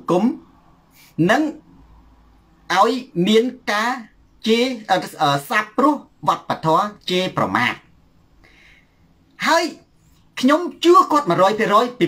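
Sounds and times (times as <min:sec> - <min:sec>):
man speaking: 0:00.0 - 0:01.6, 0:02.7 - 0:07.9, 0:09.4 - 0:12.0.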